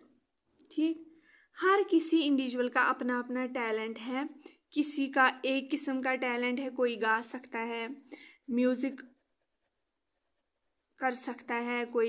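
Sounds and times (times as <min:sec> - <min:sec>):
pen scratching on paper: 0:08.6 - 0:12.0.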